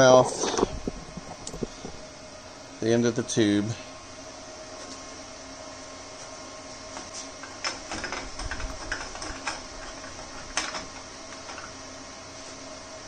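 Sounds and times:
fan humming: 0.0s - 13.0s.

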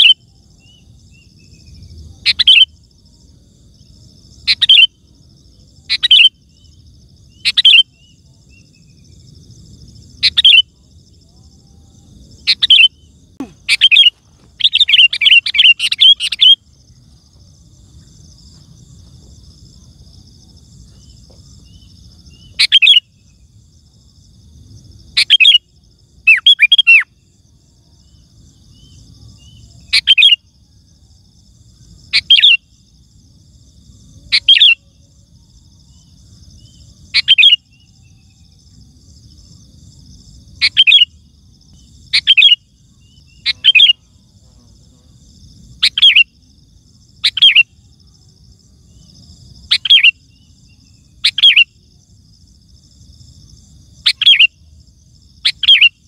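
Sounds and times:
faint insect trill: 0.0s - 56.0s
bulbul singing: 12.4s - 17.0s, 48.9s - 51.8s.

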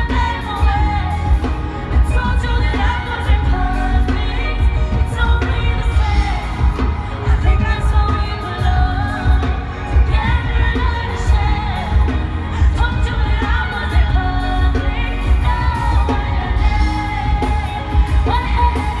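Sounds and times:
pulsing bass backing: 0.0s - 19.0s
woman singing: 0.0s - 19.0s.

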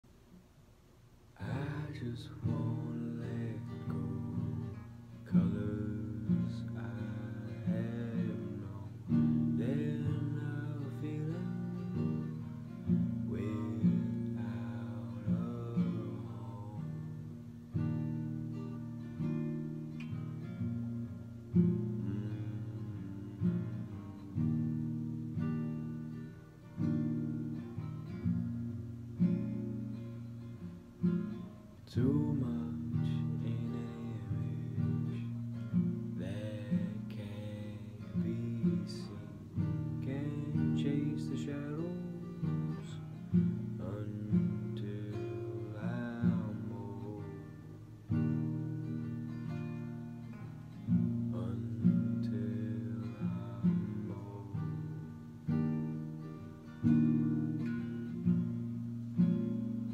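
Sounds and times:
acoustic guitar strumming chords: 1.3s - 59.9s.

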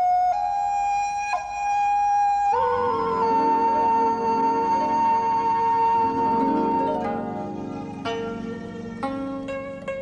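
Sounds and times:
flute-like wind instrument notes: 0.0s - 8.9s.

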